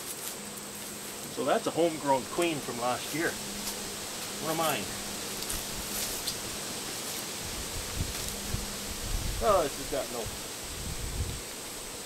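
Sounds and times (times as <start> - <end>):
faint steady hum: 0.0 - 12.0
outdoor hiss: 0.0 - 12.0.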